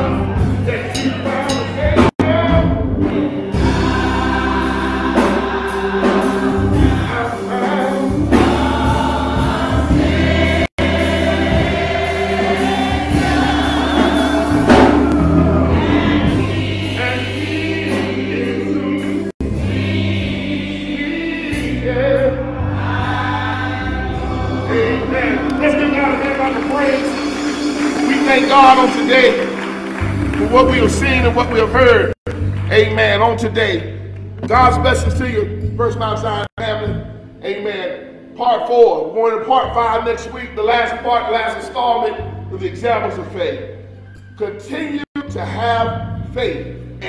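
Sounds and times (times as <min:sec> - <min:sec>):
bass line: 0:00.0 - 0:07.3, 0:08.1 - 0:37.3
gospel choir singing: 0:00.0 - 0:33.4
instrumental accompaniment: 0:00.0 - 0:38.4.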